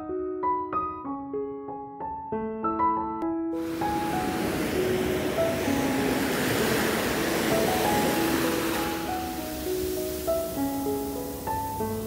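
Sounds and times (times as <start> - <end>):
slow piano music: 0.0 - 12.0
surf washing up beach: 3.6 - 12.0.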